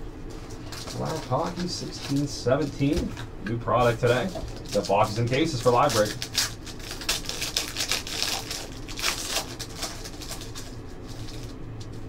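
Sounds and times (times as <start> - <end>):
cards rustling: 0.3 - 12.0
wrapper crinkling and tearing: 0.4 - 12.0.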